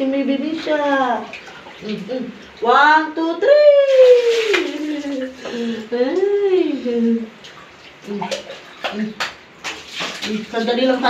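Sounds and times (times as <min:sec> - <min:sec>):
bath water splashing and dripping: 0:00.6 - 0:02.8, 0:03.9 - 0:06.5, 0:07.3 - 0:11.0.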